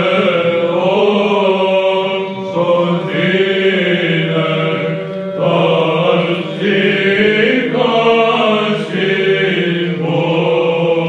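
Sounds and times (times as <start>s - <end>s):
low vocal drone: 0.0s - 11.0s.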